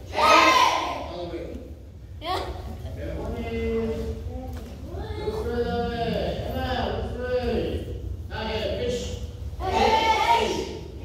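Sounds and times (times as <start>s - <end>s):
voices calling out with echo: 0.0s - 11.0s.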